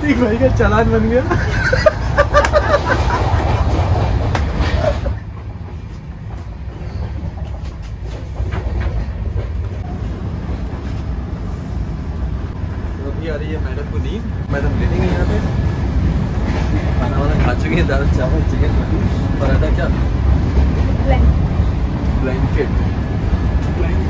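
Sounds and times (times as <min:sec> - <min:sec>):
train rumbling from inside coach: 0:00.0 - 0:24.0
voices and laughter: 0:01.1 - 0:04.0.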